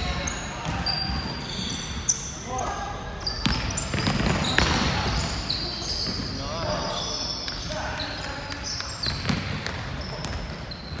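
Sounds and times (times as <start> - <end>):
sneakers squeaking on court: 0.0 - 11.0
basketball bouncing: 3.4 - 5.4, 9.0 - 10.6.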